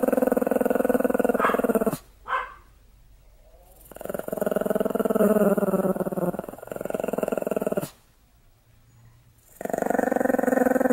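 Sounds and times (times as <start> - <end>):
dog grumbling: 0.0 - 2.0, 3.4 - 8.0, 9.4 - 10.9.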